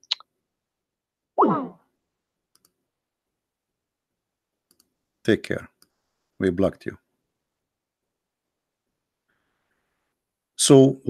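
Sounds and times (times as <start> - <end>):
computer mouse clicks: 2.5 - 2.8, 4.7 - 5.0.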